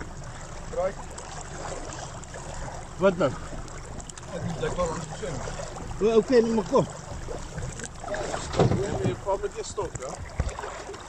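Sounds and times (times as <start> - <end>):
low rumble of open water: 0.0 - 11.0
voices talking: 4.2 - 7.1.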